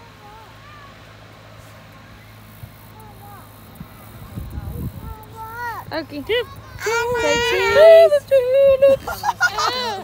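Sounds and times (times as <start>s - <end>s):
faint distant voices: 0.0s - 10.0s
wind buffeting microphone: 3.7s - 9.3s.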